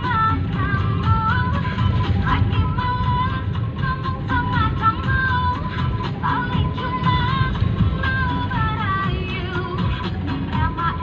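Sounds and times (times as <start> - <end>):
low rumble: 0.4 - 9.1.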